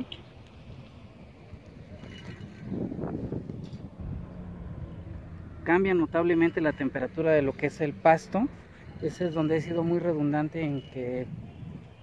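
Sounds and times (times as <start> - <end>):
vehicle passing by: 2.6 - 9.3.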